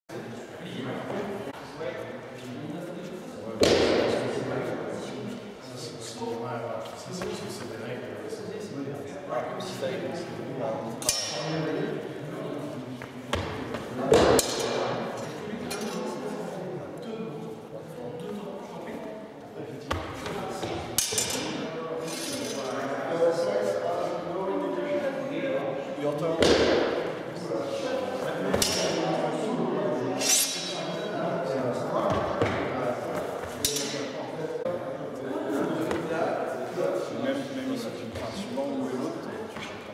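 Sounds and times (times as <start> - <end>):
people talking in a large hall: 0.1 - 39.9
steel swords clashing and ringing: 11.0 - 11.5, 30.2 - 31.1
sharp echoing knock: 26.4 - 27.1.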